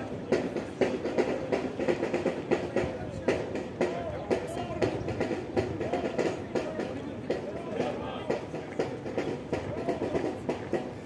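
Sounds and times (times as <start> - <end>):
boots stamping in march: 0.0 - 11.0.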